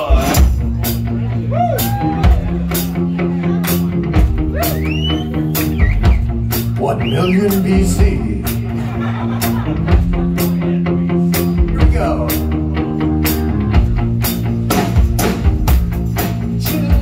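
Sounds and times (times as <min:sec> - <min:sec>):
drum kit steady beat: 0:00.0 - 0:17.0
rock band playing: 0:00.0 - 0:17.0.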